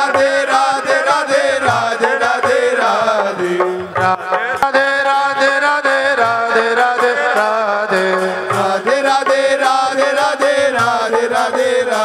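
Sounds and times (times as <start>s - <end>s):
devotional chant: 0.0s - 12.0s
percussion beat: 0.0s - 12.0s.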